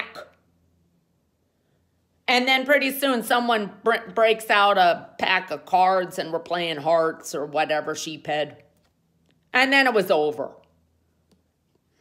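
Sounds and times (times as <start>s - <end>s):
woman speaking: 0.0s - 0.4s, 2.2s - 8.7s, 9.5s - 10.7s
faint low hum: 0.0s - 12.0s.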